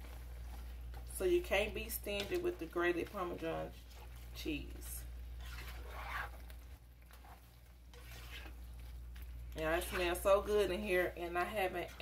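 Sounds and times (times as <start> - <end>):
spatula stirring thick sauce: 0.0 - 12.0.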